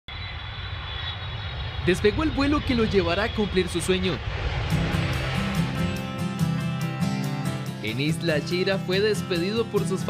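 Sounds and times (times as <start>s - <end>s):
jet engine rumble: 0.1s - 7.6s
high engine whine: 0.1s - 7.8s.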